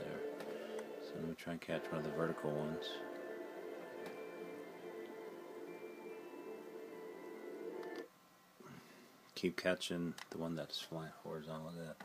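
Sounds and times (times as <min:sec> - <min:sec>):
documentary soundtrack music from tv: 0:00.0 - 0:08.1.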